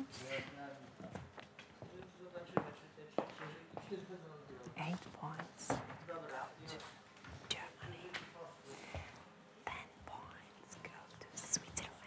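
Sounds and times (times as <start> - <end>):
person whispering: 9.7 - 12.0.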